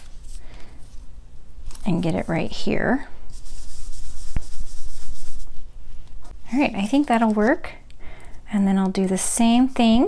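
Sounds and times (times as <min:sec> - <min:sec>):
brush rubbing over cardstock: 0:01.9 - 0:06.1, 0:09.4 - 0:10.0.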